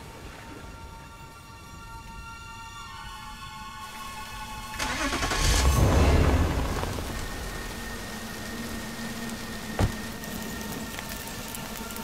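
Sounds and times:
heavy rain falling: 0:04.7 - 0:12.0
deep rumble: 0:05.4 - 0:11.0.

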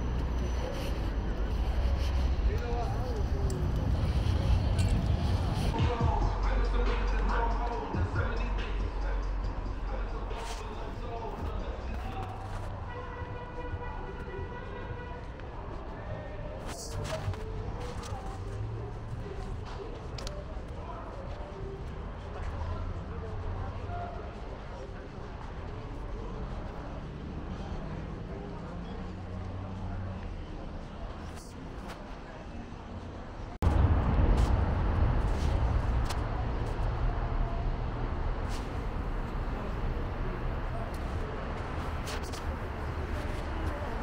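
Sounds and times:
indistinct voices: 0:00.0 - 0:44.0
passing traffic: 0:00.0 - 0:44.0.

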